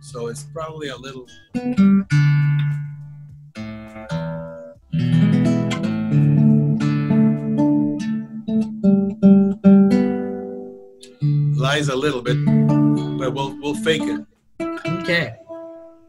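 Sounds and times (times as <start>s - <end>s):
guitar chords strummed: 0.0s - 16.0s
guitar strings plucked: 0.0s - 16.0s.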